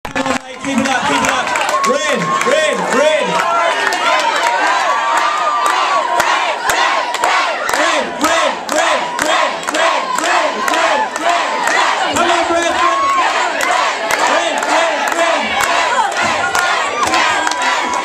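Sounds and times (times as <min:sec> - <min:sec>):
crowd shouting and cheering: 0:00.0 - 0:18.0
rhythmic crowd shouts: 0:00.2 - 0:18.0
sharp claps: 0:13.1 - 0:18.0.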